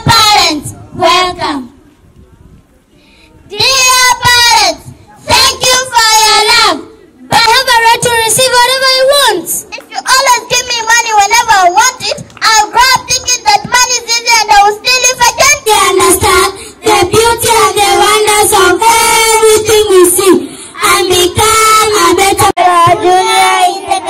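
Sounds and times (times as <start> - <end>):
girls singing into microphones: 14.6 - 24.0.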